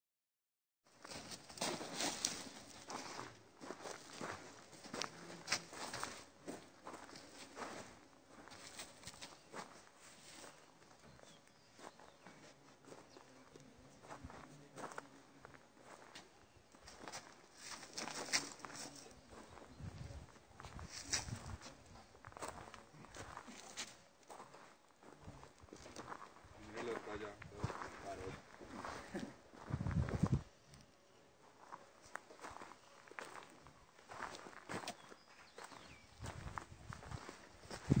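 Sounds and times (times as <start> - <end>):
hoof steps on soft dirt: 1.0 - 13.3, 31.6 - 38.0.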